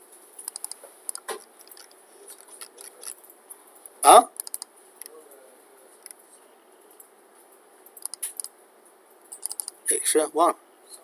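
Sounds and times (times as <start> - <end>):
computer mouse clicks: 0.4 - 3.1, 3.8 - 5.1, 7.9 - 8.5, 9.2 - 9.8.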